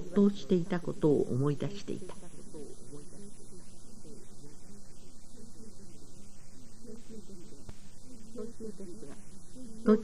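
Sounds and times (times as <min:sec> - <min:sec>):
electrical mains hum: 0:00.0 - 0:10.0
tape hiss: 0:00.0 - 0:10.0
faint voice: 0:01.6 - 0:10.0.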